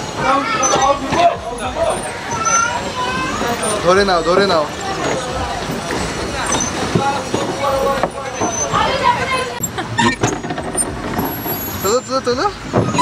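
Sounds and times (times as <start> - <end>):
steady background noise: 0.0 - 13.0
voices talking: 0.0 - 13.0.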